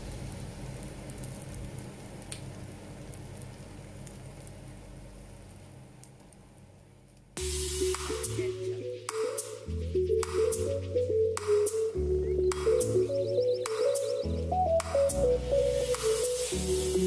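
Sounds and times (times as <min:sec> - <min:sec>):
eggs sizzling in a pan: 0:00.0 - 0:09.3, 0:15.4 - 0:17.0
music: 0:07.4 - 0:17.0.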